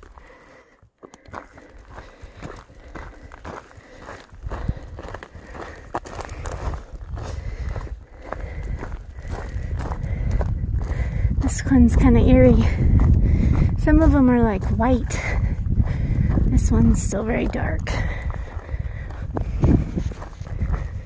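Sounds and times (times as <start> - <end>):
footsteps on dirt trail: 0.0 - 21.0
low rumble: 6.4 - 21.0.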